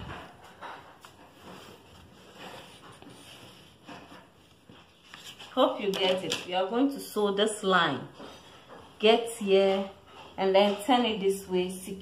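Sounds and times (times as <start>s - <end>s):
soft brushing on fabric: 1.1s - 5.6s.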